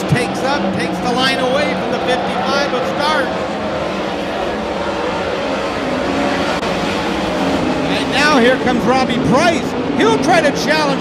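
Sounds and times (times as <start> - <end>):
race car engines blaring: 0.0 - 11.0.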